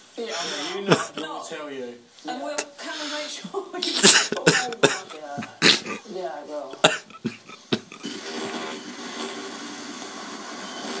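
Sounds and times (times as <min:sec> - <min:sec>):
tv static hiss: 0:00.0 - 0:11.0.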